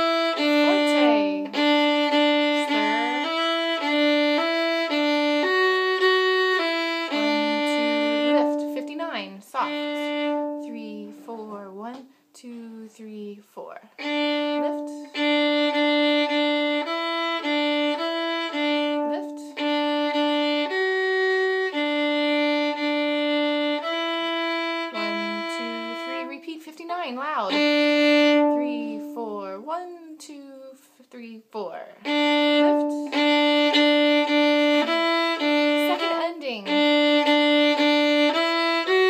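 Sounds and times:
violin playing a march: 0.0s - 11.5s, 14.0s - 26.5s, 27.2s - 29.6s, 32.0s - 39.0s.

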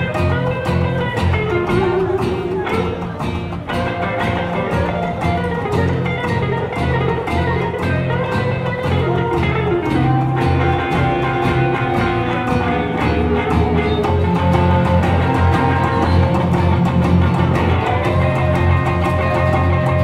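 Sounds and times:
acoustic guitar: 0.0s - 20.0s
electric guitar: 0.0s - 20.0s
upright bass: 0.0s - 20.0s.

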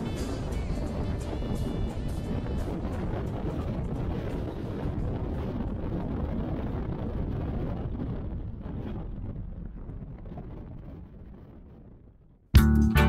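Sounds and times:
road noise rumble: 0.0s - 9.0s
wind buffeting microphone: 0.0s - 12.5s.

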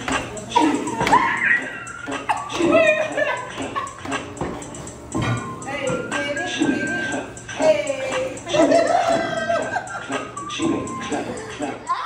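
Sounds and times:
people yelping and whooping: 0.5s - 3.8s, 11.1s - 12.0s.

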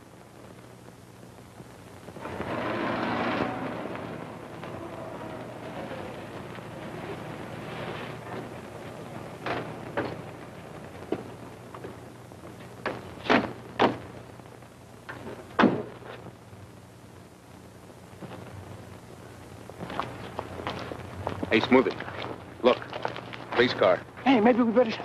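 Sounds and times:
car pulling up: 2.2s - 8.4s.

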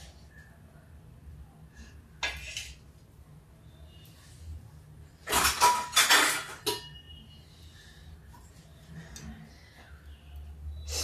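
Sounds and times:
metal utensils clattering: 5.2s - 7.0s.

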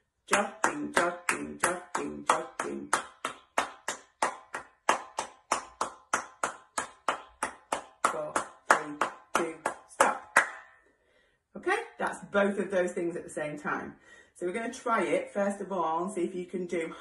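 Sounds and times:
hand claps: 0.3s - 10.8s.

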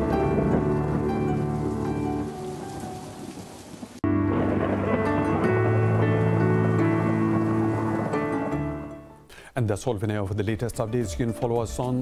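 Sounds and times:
background music: 0.0s - 3.1s, 4.0s - 12.0s
wash of noise: 0.0s - 8.9s.

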